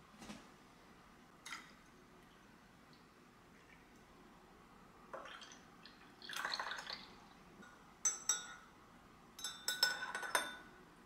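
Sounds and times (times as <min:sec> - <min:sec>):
milk pouring into a cup: 0:05.2 - 0:07.2.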